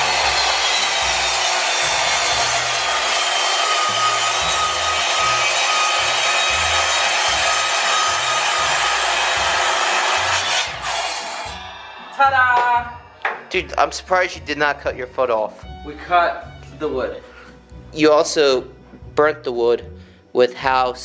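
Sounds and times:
miter saw cutting wood: 0:00.0 - 0:13.3.

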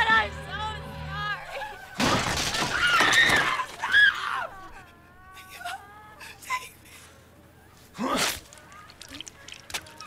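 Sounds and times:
woman sobbing and wailing: 0:03.7 - 0:07.6.

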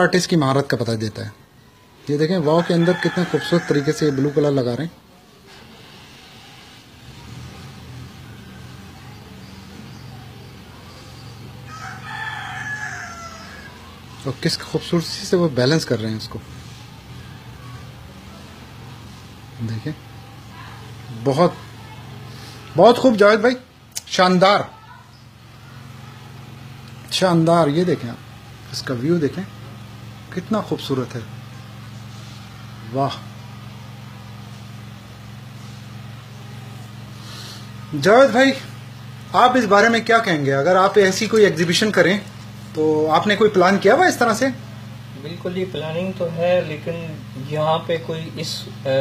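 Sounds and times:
steady low hum: 0:00.0 - 0:49.0.

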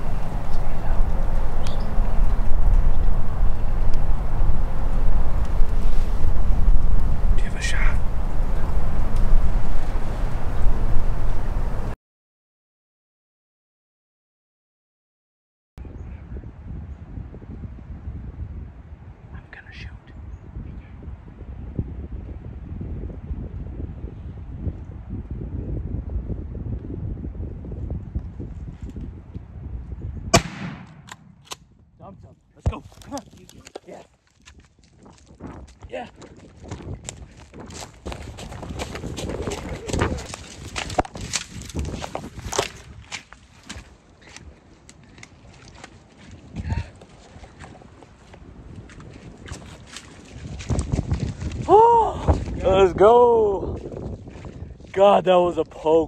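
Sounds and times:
low rumble: 0:00.0 - 0:12.0
shotgun shot: 0:30.3 - 0:31.6.

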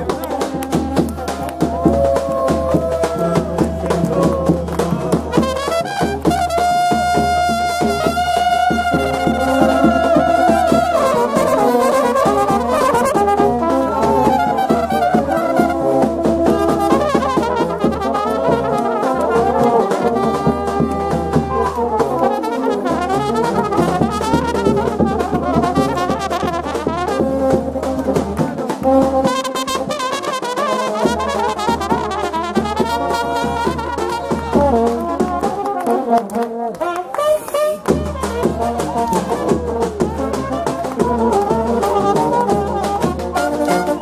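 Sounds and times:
brass band playing: 0:00.0 - 0:44.0.

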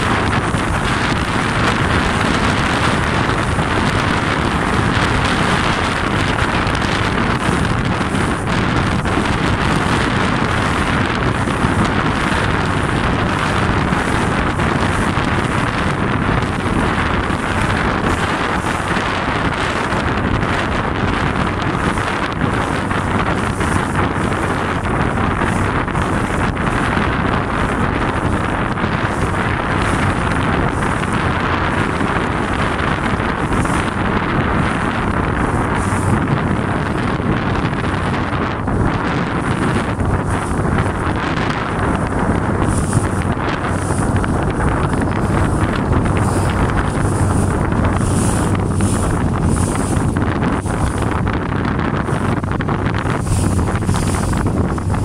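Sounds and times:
boat running: 0:00.0 - 0:55.0
water noise: 0:00.0 - 0:55.0
wind buffeting microphone: 0:00.0 - 0:55.0.

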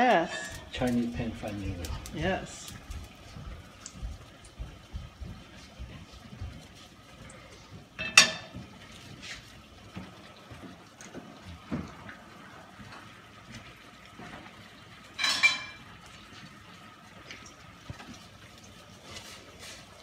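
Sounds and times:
metal pots and pans clanking: 0:08.0 - 0:08.6, 0:15.1 - 0:15.9.

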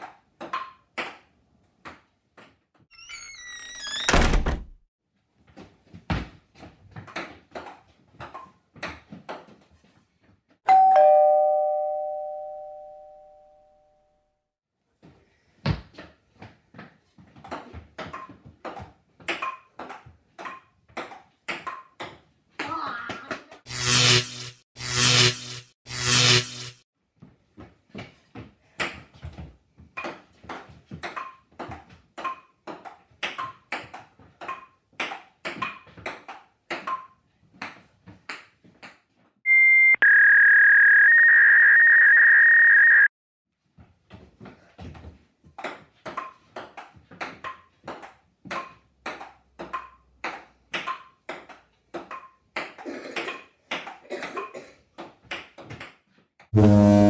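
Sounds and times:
loud electronic beep: 0:39.5 - 0:43.1, 0:56.6 - 0:57.0.

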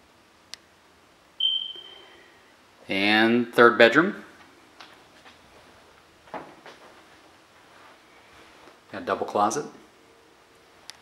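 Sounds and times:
high-pitched tone: 0:01.4 - 0:02.2.

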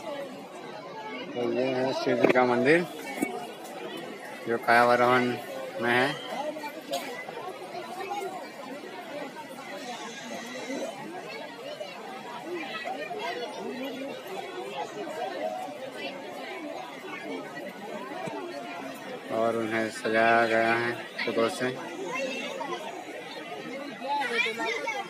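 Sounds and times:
crowd chatter: 0:00.0 - 0:25.0.

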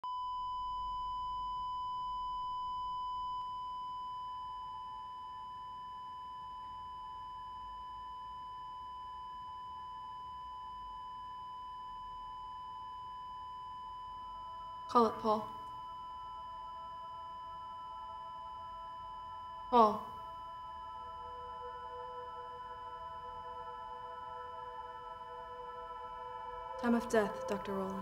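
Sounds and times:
lower steady tone: 0:00.0 - 0:28.0
flatline alarm continuous beep: 0:00.1 - 0:28.0.

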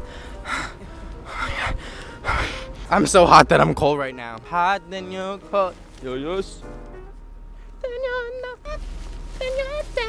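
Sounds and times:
person panting heavily: 0:00.0 - 0:02.9
background music: 0:00.0 - 0:10.0.

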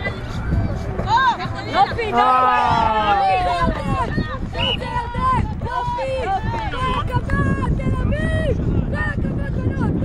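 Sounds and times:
people shouting: 0:02.0 - 0:07.2.

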